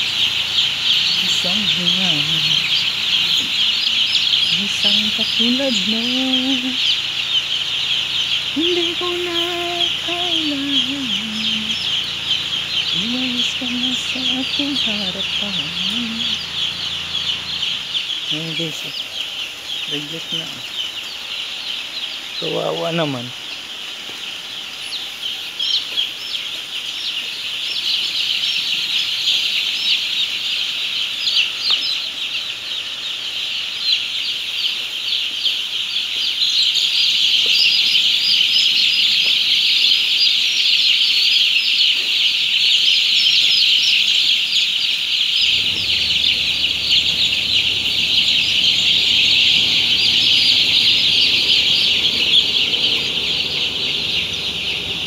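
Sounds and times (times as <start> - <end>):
steady low hum: 0.0 - 21.5, 45.3 - 55.0
chicks peeping: 0.0 - 55.0.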